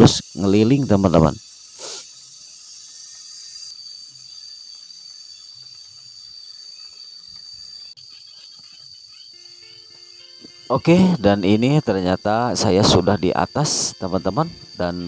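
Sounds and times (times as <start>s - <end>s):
insects droning: 0.0s - 15.0s.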